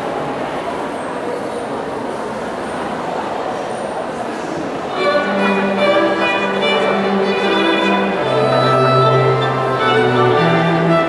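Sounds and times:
crowd murmur: 0.0s - 11.0s
string quartet bowed notes: 4.9s - 11.0s.

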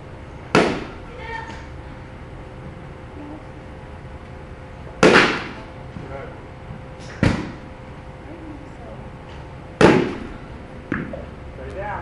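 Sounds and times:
bat hitting ball: 0.5s - 1.0s, 5.0s - 5.6s, 9.8s - 11.2s.

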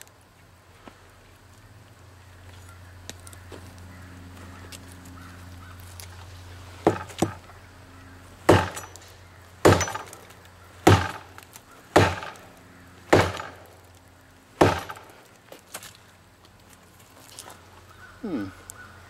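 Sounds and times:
machete chopping wood: 6.8s - 7.5s, 8.5s - 12.5s, 13.1s - 13.9s, 14.6s - 15.3s.

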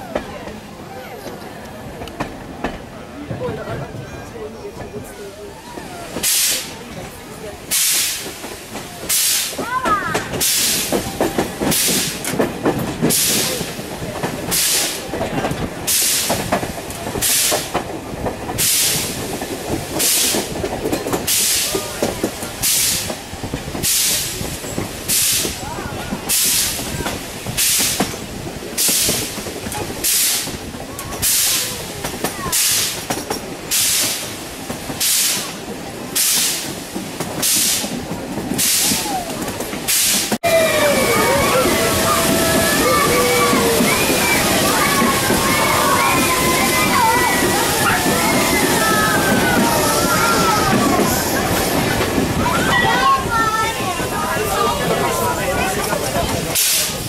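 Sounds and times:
rumble of coaches on track: 0.0s - 57.0s
steam locomotive chuffing: 1.8s - 57.0s.

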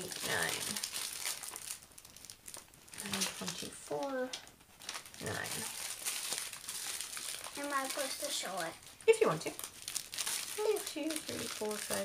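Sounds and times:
plastic bags crinkling: 0.0s - 4.1s, 4.7s - 12.0s
person speaking: 5.2s - 5.8s.

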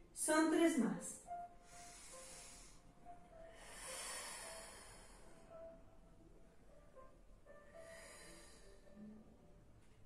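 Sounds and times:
faint background music: 0.0s - 10.0s
woman breathing: 1.6s - 5.8s, 7.6s - 9.5s.

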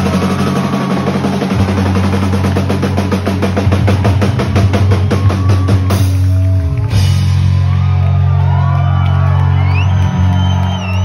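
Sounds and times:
rapid drum hits: 0.0s - 7.8s
bass and guitar chords: 0.0s - 11.0s.

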